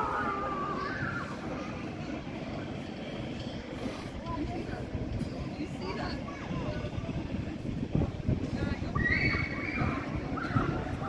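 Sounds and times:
indistinct chatter of people: 0.0 - 11.0
traffic rumble: 0.0 - 11.0.

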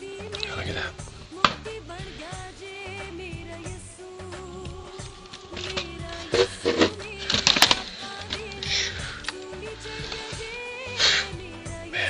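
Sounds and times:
background music: 0.0 - 12.0
laptop handled with clicks and knocks: 5.4 - 8.7.

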